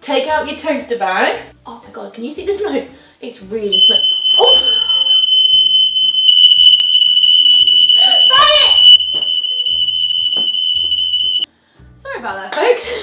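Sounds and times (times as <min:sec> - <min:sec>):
smoke alarm high-pitched tone: 0:03.7 - 0:11.5.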